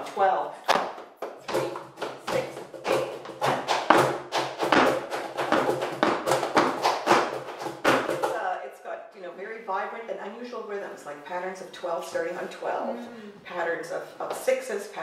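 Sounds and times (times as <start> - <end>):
flamenco handclaps: 0.7 - 8.4.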